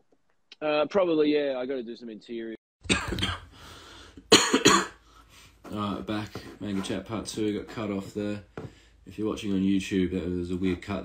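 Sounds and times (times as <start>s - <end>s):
man coughing: 2.8s - 3.6s, 4.3s - 5.0s.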